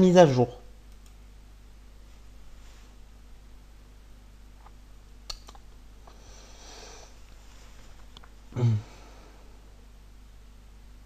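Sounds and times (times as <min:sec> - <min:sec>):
low steady hum: 0:00.0 - 0:11.0
sharp click: 0:05.3 - 0:05.6.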